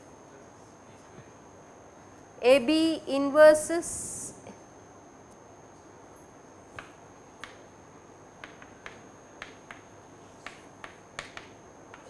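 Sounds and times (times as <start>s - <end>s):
chalk tapping on blackboard: 8.4s - 12.0s.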